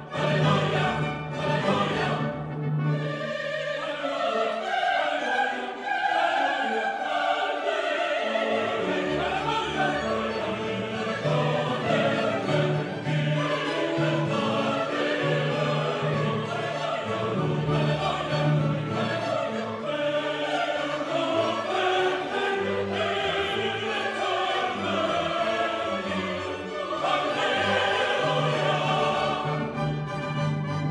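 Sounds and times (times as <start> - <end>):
choir singing: 0.0 - 30.9
orchestra playing classical music: 0.0 - 30.9.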